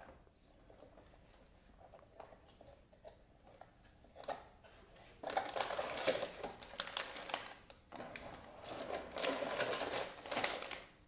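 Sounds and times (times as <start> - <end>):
plastic bags crinkling: 5.2 - 11.0.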